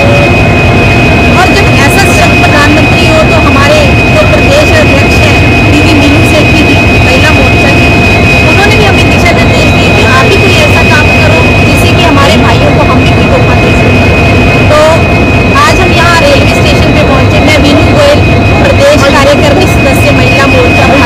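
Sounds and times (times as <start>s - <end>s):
woman talking: 0.0s - 0.4s, 1.3s - 14.1s, 14.7s - 21.0s
constant high whine: 0.0s - 21.0s
locomotive engine rumble: 0.0s - 21.0s.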